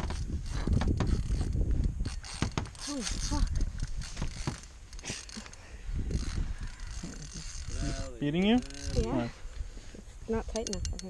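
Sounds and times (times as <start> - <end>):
fishing reel clicks and knocks: 0.0 - 7.9, 8.5 - 9.0, 10.5 - 11.0.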